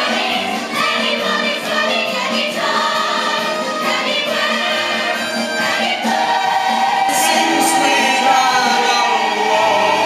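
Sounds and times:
band accompaniment: 0.0 - 10.0
ensemble singing in chorus: 0.0 - 10.0.

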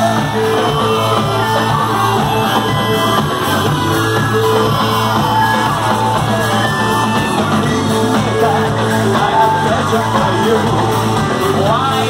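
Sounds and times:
person singing: 0.0 - 12.0
rock band playing live: 0.0 - 12.0.

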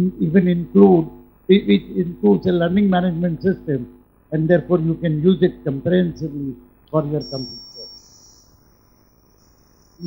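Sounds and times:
high-pitched whine: 3.4 - 10.0.

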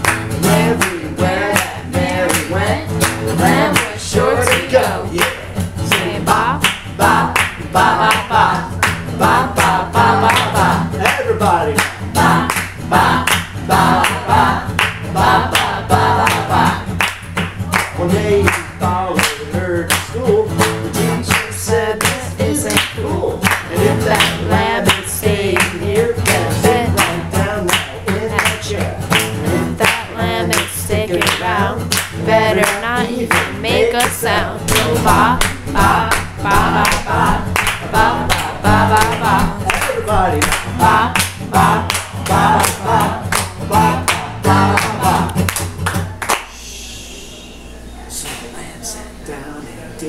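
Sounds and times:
man singing: 0.0 - 14.6, 17.8 - 45.5
acoustic guitar strumming: 0.0 - 46.2
people clapping along: 0.0 - 46.7.

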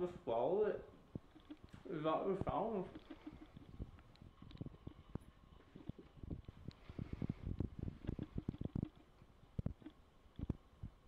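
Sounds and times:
mouth clicks and smacks: 1.1 - 1.8, 2.9 - 10.6.

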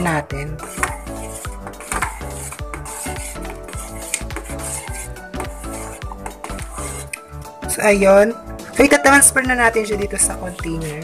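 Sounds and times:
utensil scraping metal pot: 0.0 - 7.4, 9.7 - 11.0
background music: 0.0 - 11.0.

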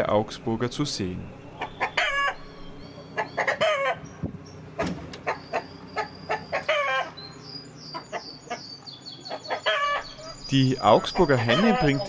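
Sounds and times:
chickens clucking and calling: 1.3 - 12.0.

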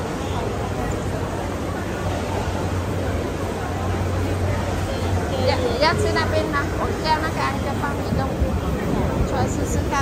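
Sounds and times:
diners talking: 0.0 - 10.0.

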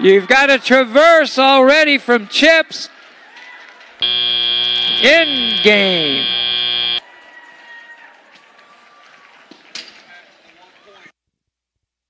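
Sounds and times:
faint tone: 4.0 - 7.0.

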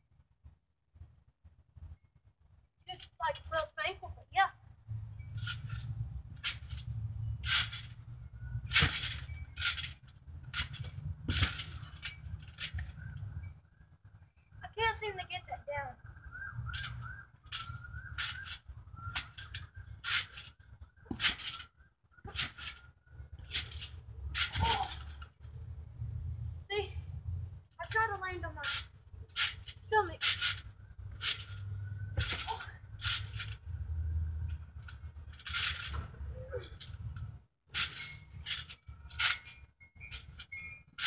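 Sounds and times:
trampoline springs creaking and thudding: 1.8 - 41.0.

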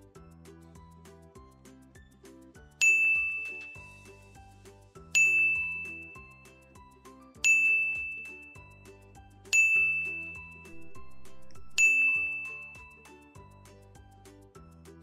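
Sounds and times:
soft background music: 0.0 - 15.0
bright chime ding: 2.8 - 3.8, 5.2 - 6.1, 7.4 - 8.5, 9.6 - 13.0.

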